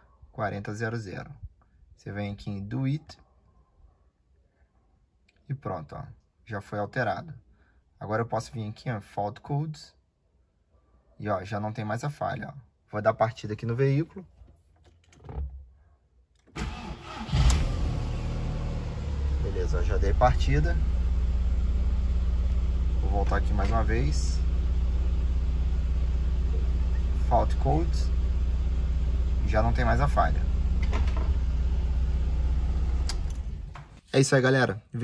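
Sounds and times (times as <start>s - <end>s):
starter motor cranking: 16.6s - 17.8s
car engine idling: 16.6s - 33.9s.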